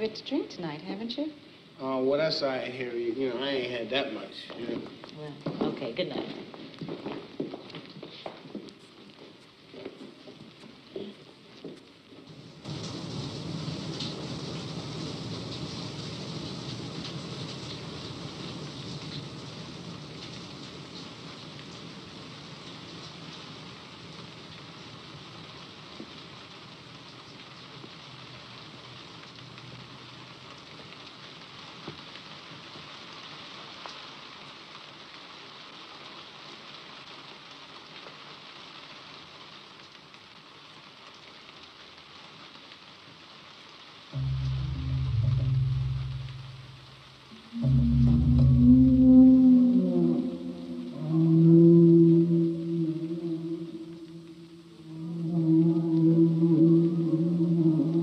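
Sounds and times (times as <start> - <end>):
heavy rain: 0.0 - 58.0
ominous low film score note: 44.2 - 51.5.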